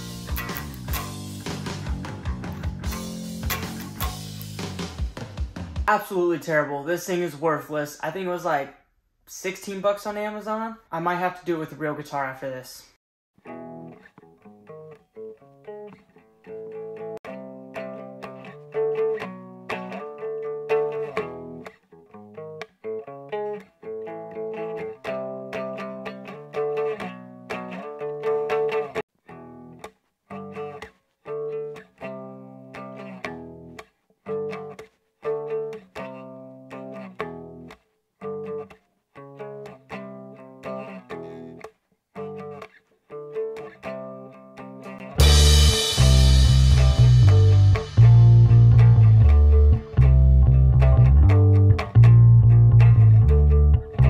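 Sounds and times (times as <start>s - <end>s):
toy guitar strummed: 0.0s - 5.0s, 13.4s - 54.0s.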